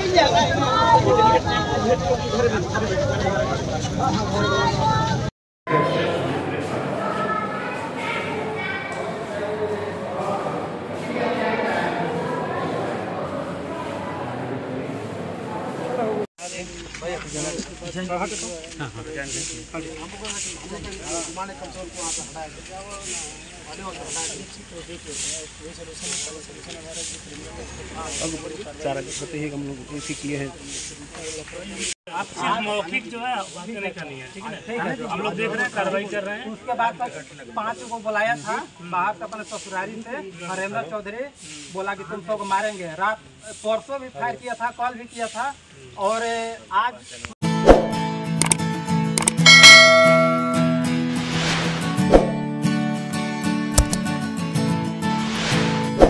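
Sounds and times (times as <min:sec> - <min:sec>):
men talking indistinctly: 0:08.9 - 0:12.2, 0:16.0 - 0:47.3
bright chime: 0:49.4 - 0:51.3
outro music sustained notes: 0:50.4 - 0:53.3.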